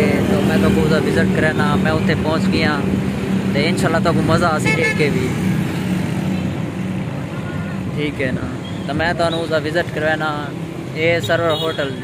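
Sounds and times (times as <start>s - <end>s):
vehicle engine humming: 0.0s - 11.1s.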